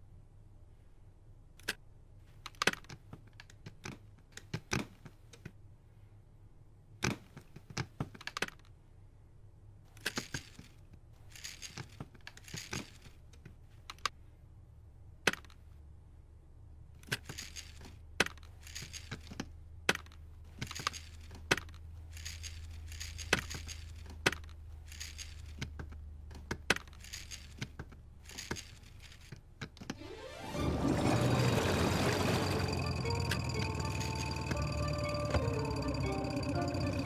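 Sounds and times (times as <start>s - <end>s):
plastic parts clicking: 1.6s - 5.6s, 7.0s - 8.8s, 9.9s - 14.2s, 15.2s - 15.7s, 17.0s - 30.0s
faint low hum: 8.5s - 37.0s
low hum: 30.0s - 37.0s.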